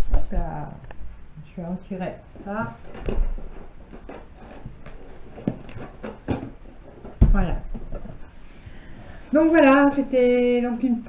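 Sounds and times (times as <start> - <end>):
heavy thump: 7.1 - 7.8.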